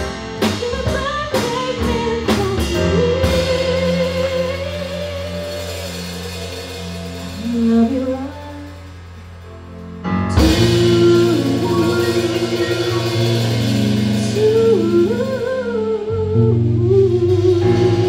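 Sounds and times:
live band music: 0.0s - 18.0s
drum hits: 10.3s - 15.5s.

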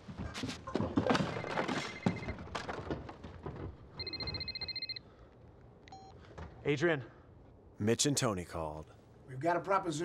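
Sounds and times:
telephone ringing: 1.4s - 2.5s, 4.0s - 5.0s.

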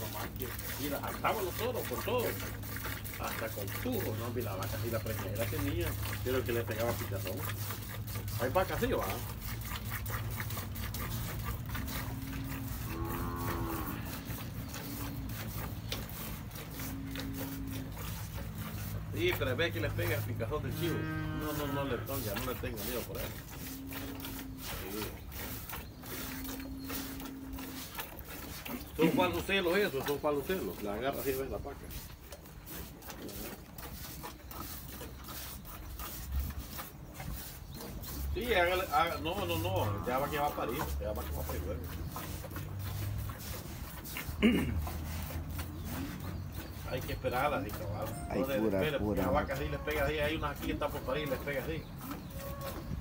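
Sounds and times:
milk squirting into pail: 0.0s - 53.0s
cattle mooing: 11.9s - 14.4s, 20.7s - 22.2s, 39.6s - 40.6s, 52.3s - 52.9s.

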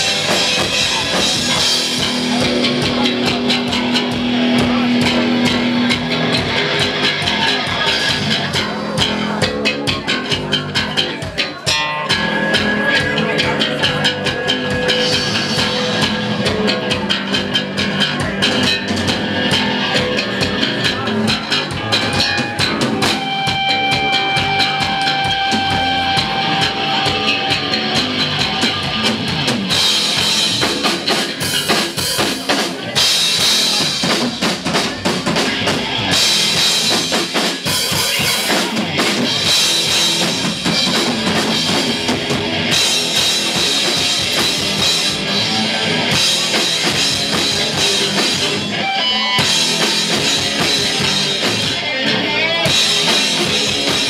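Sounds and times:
drum kit: 0.0s - 54.0s
electric bass guitar: 0.0s - 54.0s.

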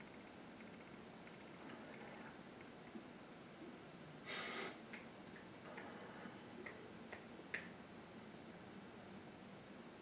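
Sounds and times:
fingers snapping: 6.6s - 7.7s.

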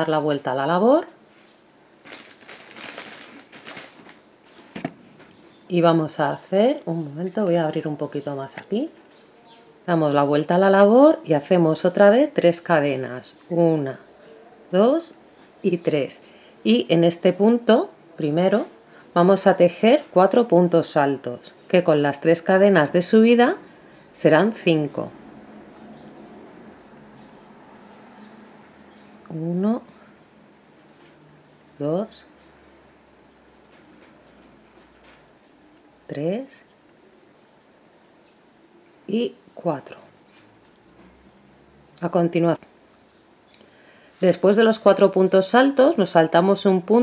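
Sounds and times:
faint low hum: 0.0s - 47.0s
rustling and scraping of crochet: 26.0s - 29.4s, 30.5s - 42.1s.

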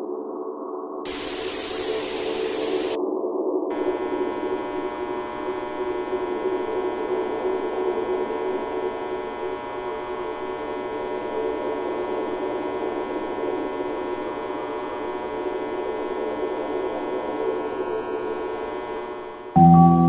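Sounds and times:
electrical hum: 1.1s - 3.0s, 3.7s - 20.0s.

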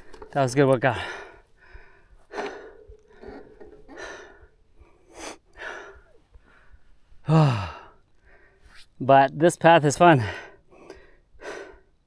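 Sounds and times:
person breathing hard: 0.9s - 8.7s, 10.2s - 12.0s
long voiced sigh: 7.2s - 8.0s.

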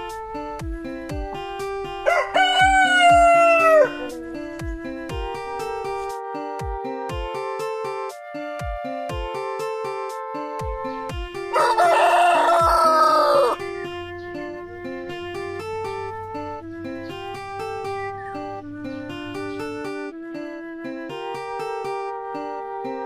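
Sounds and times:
plucked-string music: 0.0s - 23.0s
rooster crowing: 2.0s - 4.1s, 11.5s - 13.6s.

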